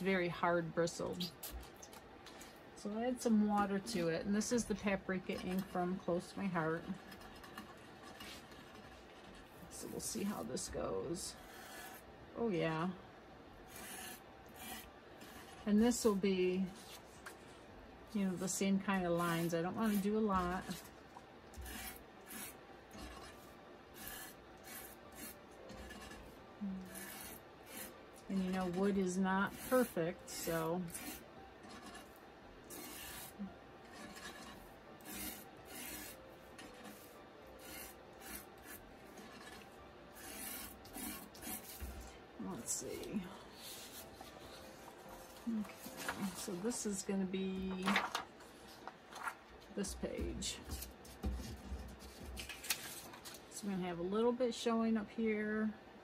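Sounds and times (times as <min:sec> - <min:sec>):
brush scratching on acrylic block: 0:06.7 - 0:10.4, 0:11.3 - 0:12.1, 0:13.7 - 0:17.5, 0:19.0 - 0:42.1.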